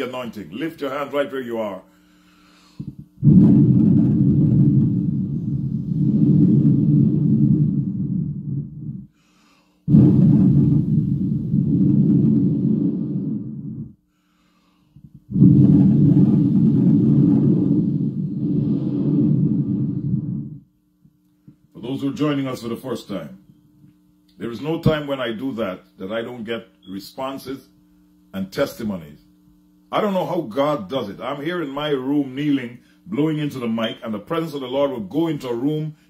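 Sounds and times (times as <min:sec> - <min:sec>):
breath blowing into microphone: 0:02.0 - 0:20.7.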